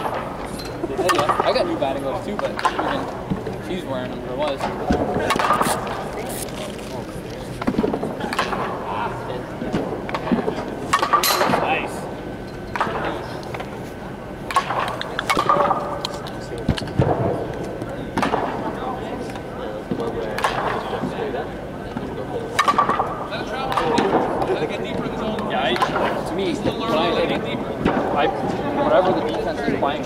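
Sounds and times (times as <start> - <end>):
voices in background: 0.0 - 30.0
softball bat hitting balls: 9.7 - 11.7, 14.4 - 18.6, 21.9 - 24.5.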